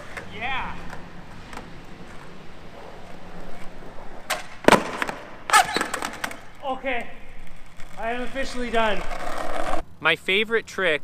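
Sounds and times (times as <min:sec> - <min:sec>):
skateboard wheels rolling on concrete: 0:00.0 - 0:09.9
skateboard clacks: 0:04.1 - 0:06.4
skateboard clattering on concrete: 0:04.2 - 0:06.4.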